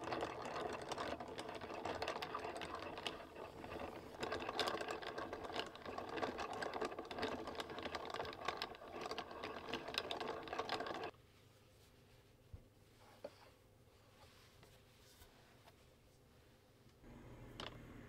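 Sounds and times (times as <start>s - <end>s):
yarn winder gears clattering: 0.0s - 11.1s.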